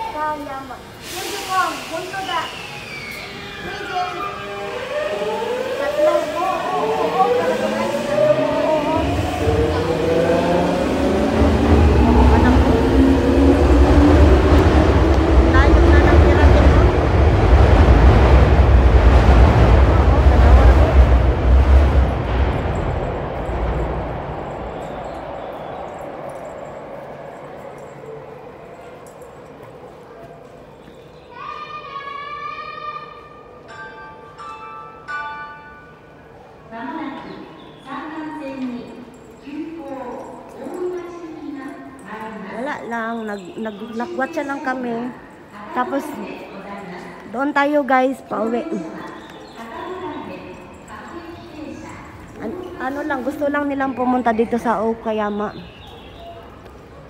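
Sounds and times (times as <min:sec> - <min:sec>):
low train rumble: 0:00.0 - 0:57.0.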